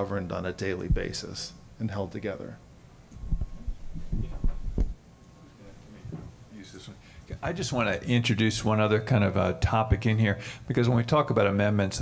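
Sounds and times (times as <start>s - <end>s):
microphone handling thumps: 0.9s - 1.2s, 3.2s - 5.0s.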